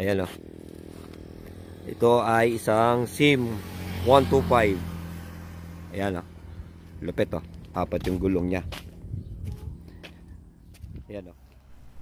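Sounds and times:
low outdoor rumble: 4.5s - 12.0s
faint footsteps on concrete: 6.8s - 12.0s.

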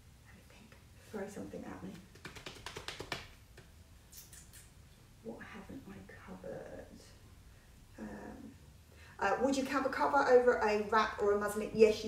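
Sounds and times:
fast light sharp clicks: 2.1s - 4.7s.

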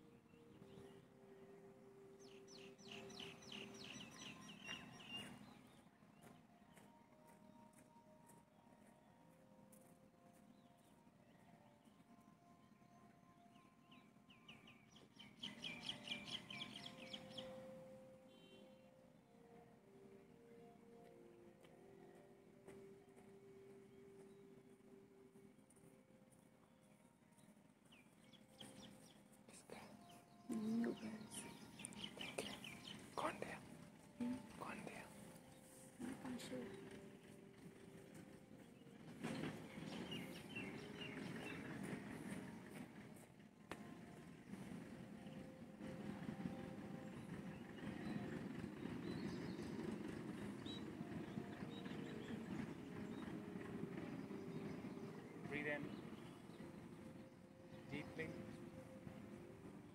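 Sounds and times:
small birds chirping: 2.2s - 7.7s, 10.5s - 18.7s, 26.6s - 37.7s, 38.6s - 42.8s, 47.1s - 58.8s.

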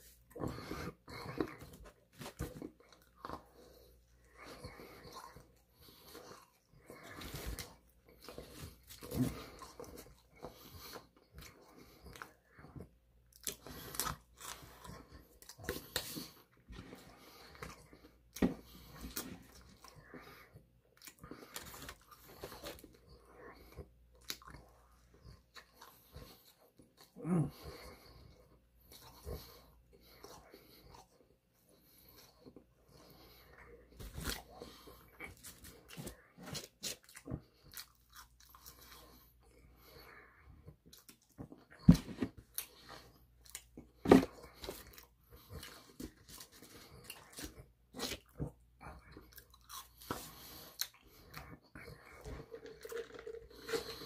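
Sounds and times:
person chewing and crunching food: 0.0s - 54.0s.

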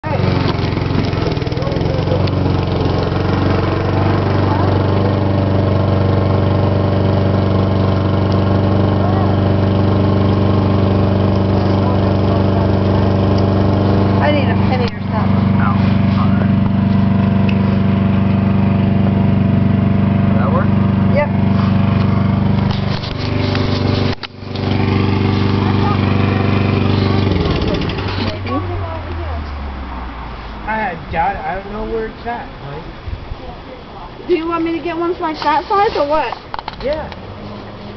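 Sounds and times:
small engine running: 0.0s - 32.8s.

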